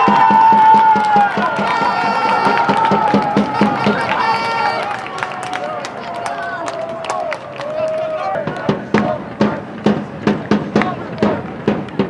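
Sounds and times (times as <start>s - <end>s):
drum beating: 0.0s - 5.0s, 8.1s - 12.0s
crowd shouting: 0.0s - 12.0s.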